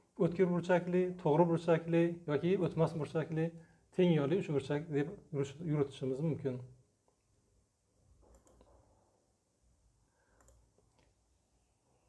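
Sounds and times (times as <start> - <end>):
computer mouse clicks: 8.2 - 8.8, 10.4 - 11.2.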